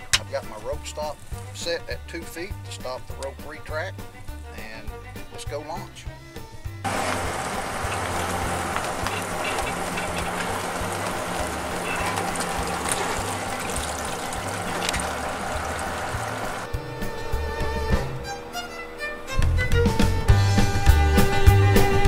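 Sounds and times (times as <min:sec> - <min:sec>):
background music: 0:00.0 - 0:22.0
water rushing and splashing: 0:06.9 - 0:16.7.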